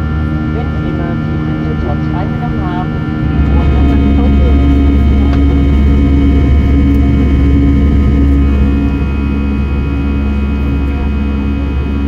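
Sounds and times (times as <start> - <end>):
deep low rumble: 0.0 - 12.0
jet engine drone: 0.0 - 12.0.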